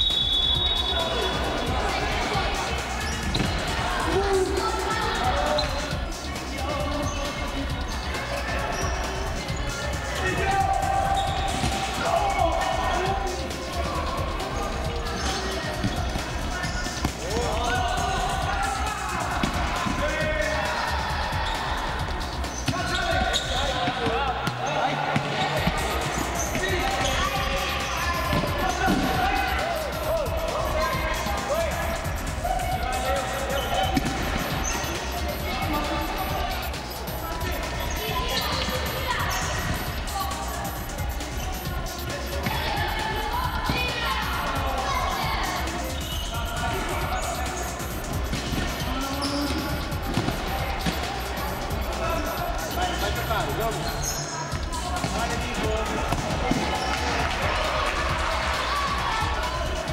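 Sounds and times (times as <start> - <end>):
players' voices in hall: 0.0 - 59.9.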